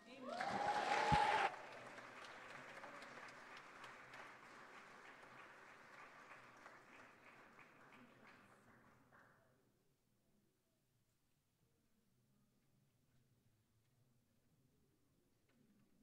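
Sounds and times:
congregation applauding: 0.0s - 9.2s.

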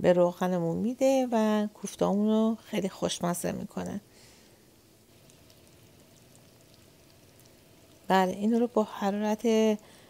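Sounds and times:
hot oil sizzling and crackling: 4.7s - 9.2s.

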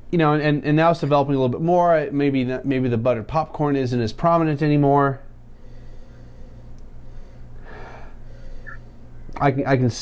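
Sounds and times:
steady low hum: 0.0s - 10.0s
person sniffing: 5.6s - 8.8s.

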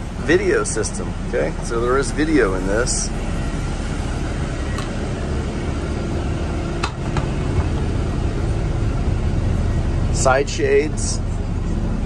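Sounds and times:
bus engine idling: 0.0s - 12.0s.

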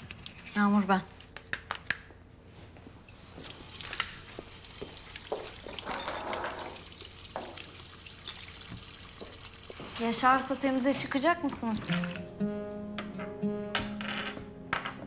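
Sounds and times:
water running from tap: 3.1s - 11.2s.

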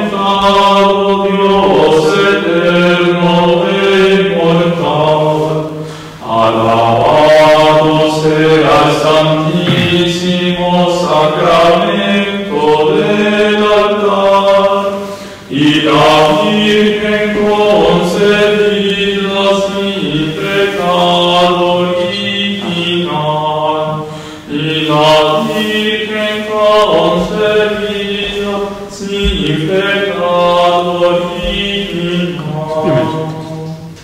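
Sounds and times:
voices singing sacred chant: 0.0s - 34.0s.

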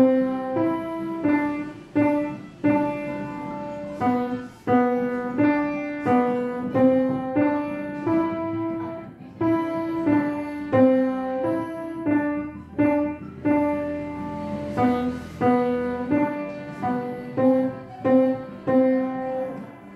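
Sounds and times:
simple piano melody: 0.0s - 19.9s.

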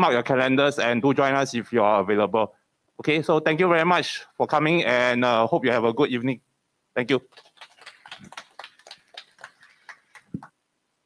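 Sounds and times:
audience clapping: 7.3s - 10.6s.

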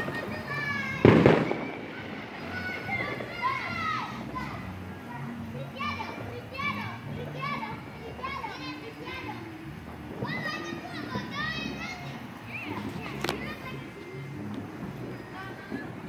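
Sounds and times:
children shouting and squealing: 0.0s - 16.0s.

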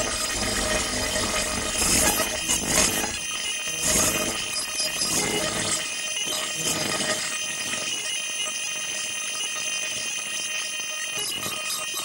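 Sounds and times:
shrill high-pitched electronic drone: 0.0s - 12.0s.

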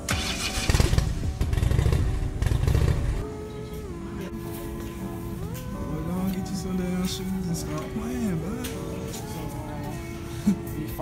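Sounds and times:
background music: 0.0s - 11.0s
motorcycle engine revving: 0.1s - 3.2s.

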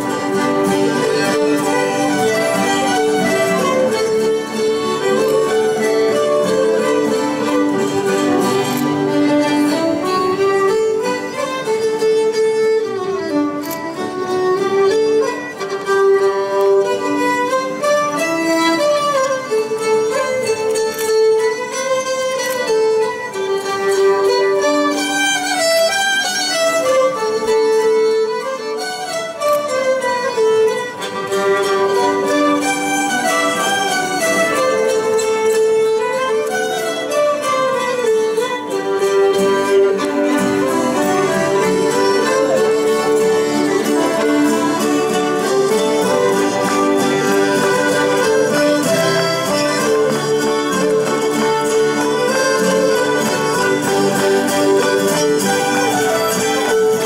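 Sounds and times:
fiddles playing folk melody: 0.0s - 57.0s
strummed guitars and mandolins: 0.0s - 57.0s.

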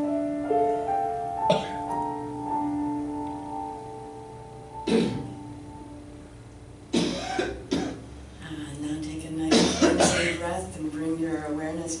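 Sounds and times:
piano note ringing: 0.0s - 8.2s
person coughing: 1.5s - 1.8s, 4.9s - 5.3s, 6.9s - 8.0s, 9.5s - 10.4s.

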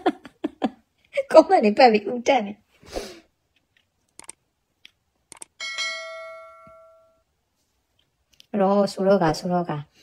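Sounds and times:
bell chime: 5.6s - 7.2s.

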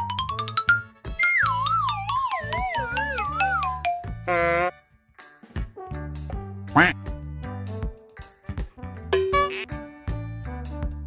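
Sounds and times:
background music with bass line: 5.4s - 11.0s
short squeaky quack: 9.3s - 9.7s.

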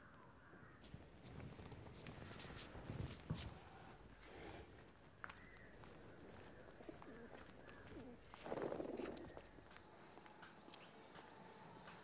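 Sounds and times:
low bird calls: 4.2s - 12.0s.

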